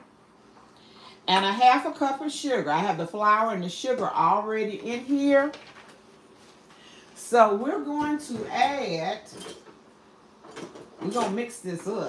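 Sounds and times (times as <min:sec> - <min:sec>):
kitchen utensils clinking in drawer: 0:09.3 - 0:09.7.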